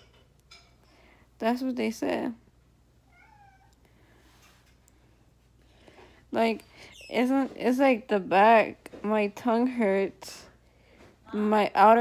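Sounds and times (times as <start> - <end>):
cat meowing faintly: 3.1 - 3.8.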